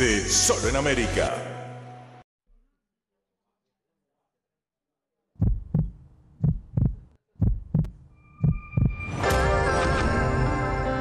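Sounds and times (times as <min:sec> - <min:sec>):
heartbeat thumps: 0:05.4 - 0:09.0.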